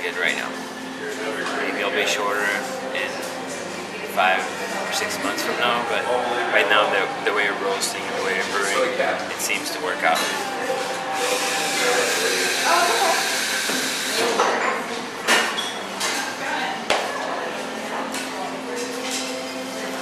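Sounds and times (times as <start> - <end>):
voices in background: 0.0 - 20.0
coffee brewer hissing: 11.1 - 14.4.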